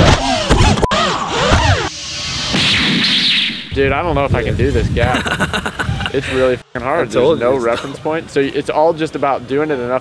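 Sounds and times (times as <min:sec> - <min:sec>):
quadcopter motors whining: 0:00.0 - 0:02.6.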